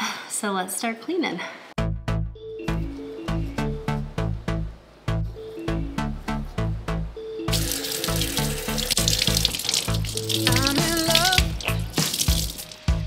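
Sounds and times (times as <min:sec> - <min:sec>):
faucet water running into sink: 0:07.5 - 0:12.9
pop music with steady beat: 0:07.5 - 0:13.0.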